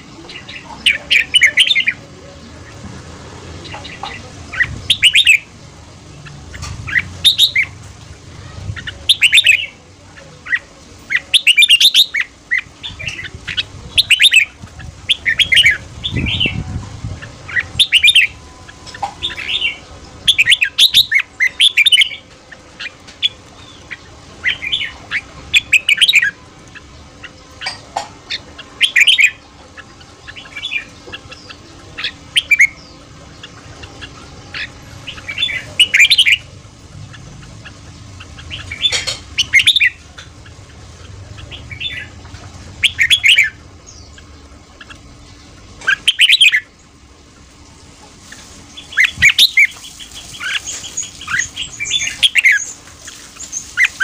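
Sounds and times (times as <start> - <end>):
bird singing whistled phrases: 4.6 - 5.5, 6.9 - 7.7, 17.5 - 22.2, 45.8 - 46.7, 48.8 - 52.8.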